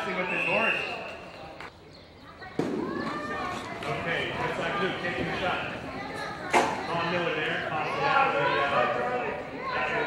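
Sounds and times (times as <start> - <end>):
voices in indoor arena: 0.0 - 10.0.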